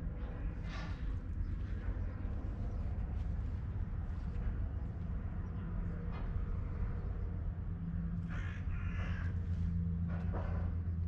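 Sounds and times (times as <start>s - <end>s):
low steady hum: 0.0s - 11.0s
bird cawing: 8.2s - 9.8s.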